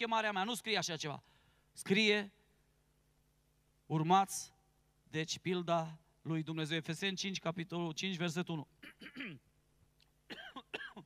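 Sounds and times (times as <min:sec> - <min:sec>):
man speaking: 0:03.9 - 0:08.8
man coughing: 0:08.8 - 0:09.5, 0:10.3 - 0:11.0.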